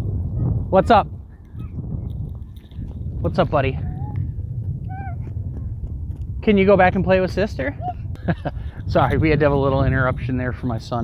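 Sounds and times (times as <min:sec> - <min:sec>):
wind rumbling on microphone: 0:00.0 - 0:11.0
small child calling: 0:00.3 - 0:01.8, 0:03.8 - 0:05.7.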